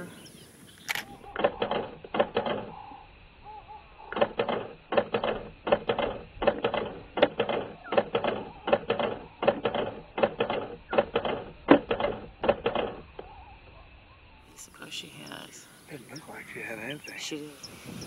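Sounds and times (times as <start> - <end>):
camera shutter clicking: 0.8 - 1.5.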